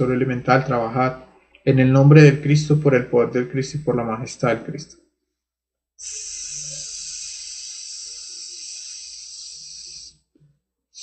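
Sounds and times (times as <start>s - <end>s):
person hissing exhale: 6.0s - 10.2s.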